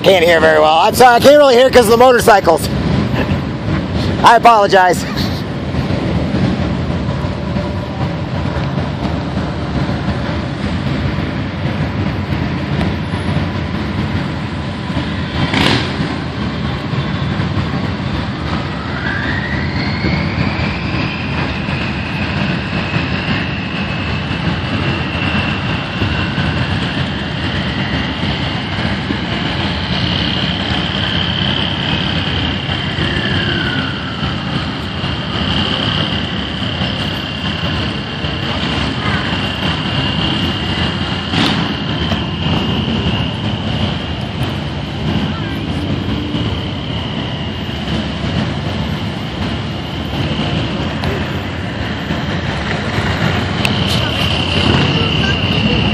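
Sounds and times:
long high whine: 0.0s - 55.9s
vehicle engines and tyres rumbling: 0.0s - 55.9s.

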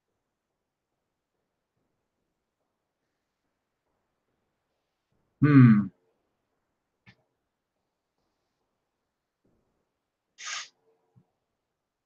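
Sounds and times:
sharp hiss of breath: 10.4s - 10.7s.

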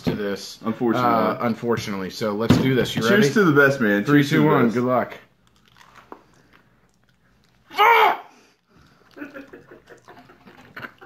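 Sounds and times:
wet chewing sounds: 5.3s - 7.7s, 8.6s - 11.0s
person's loud vocal outburst: 7.7s - 8.4s.

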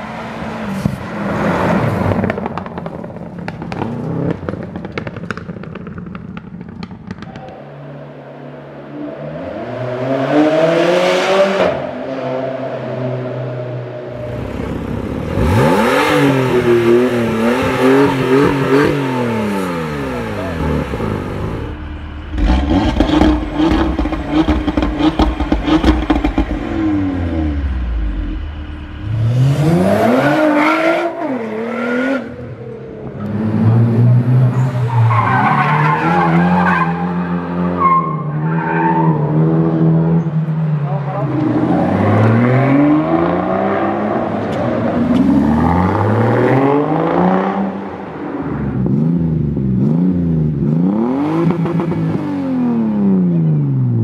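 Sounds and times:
car engines revving: 0.0s - 54.0s
rapid engine crackling: 19.3s - 29.4s.

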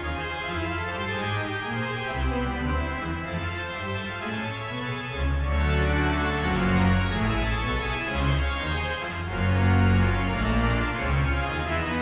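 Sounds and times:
church organ chords: 0.0s - 12.0s.

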